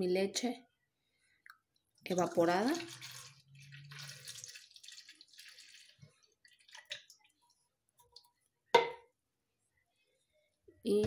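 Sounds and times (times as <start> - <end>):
liquid pouring into blender jar: 2.1 - 8.3.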